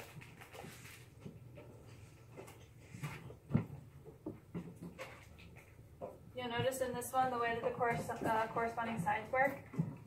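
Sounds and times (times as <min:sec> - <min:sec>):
low steady hum: 0:00.0 - 0:10.0
soft taps and rustles: 0:00.0 - 0:10.0.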